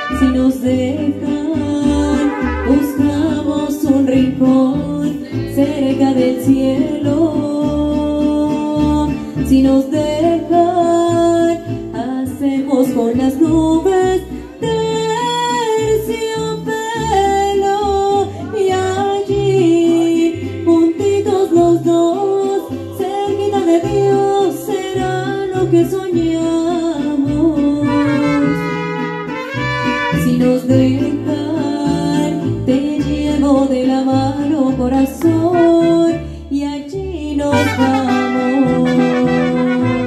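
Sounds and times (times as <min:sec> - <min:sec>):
strummed guitars: 0:00.0 - 0:40.0
woman singing into microphone: 0:00.0 - 0:40.0
deep bass guitar notes: 0:00.1 - 0:06.1.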